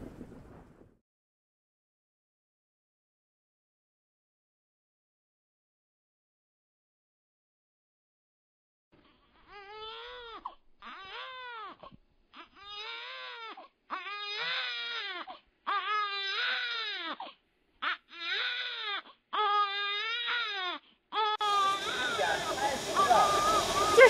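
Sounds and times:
newborn baby crying: 9.0s - 24.0s.

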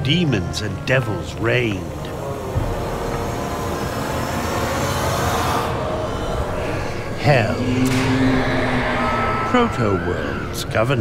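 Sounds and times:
dense low rumble: 5.9s - 10.8s.

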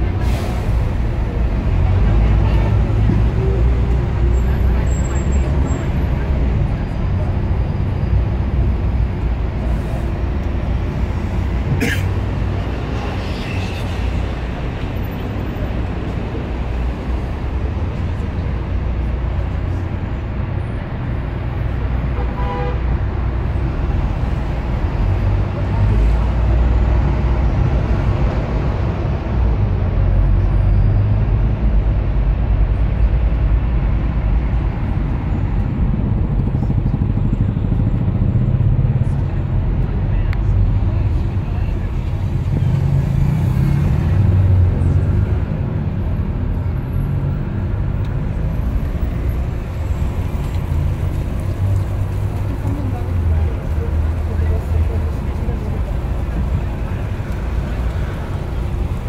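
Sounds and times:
bus engine and road rumble: 0.0s - 59.0s.

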